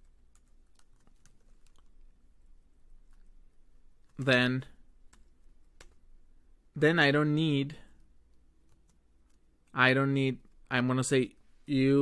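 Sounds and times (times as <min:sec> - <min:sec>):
computer keyboard keystrokes: 0:00.3 - 0:01.9, 0:05.1 - 0:06.0.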